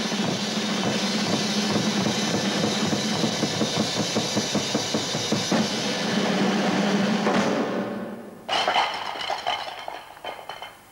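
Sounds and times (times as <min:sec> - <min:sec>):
cymbals washing: 0:00.0 - 0:06.9
drum kits played fast: 0:00.0 - 0:09.0.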